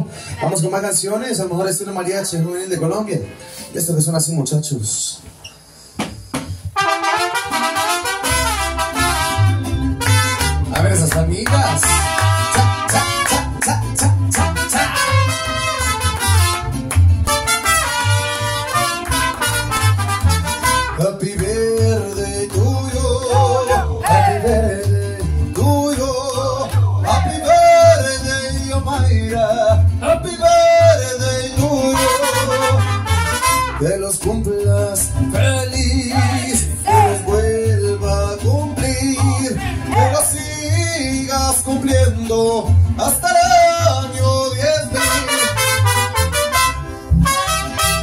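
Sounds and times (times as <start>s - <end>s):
mariachi band playing: 0.0s - 4.1s, 6.6s - 48.0s.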